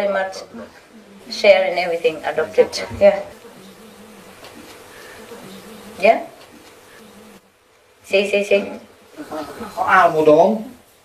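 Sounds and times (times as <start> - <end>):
low buzzing hum: 0.0 - 11.0.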